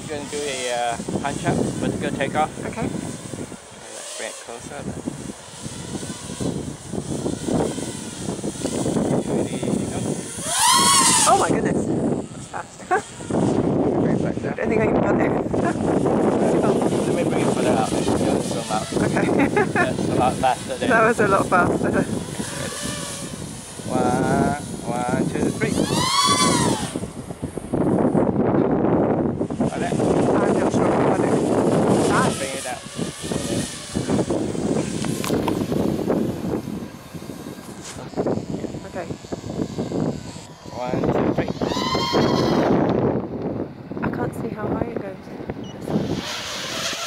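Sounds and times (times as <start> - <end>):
quadcopter motors buzzing: 0.0 - 47.0
wind noise on microphone: 0.0 - 47.0
drone whine speeding past: 30.2 - 43.9.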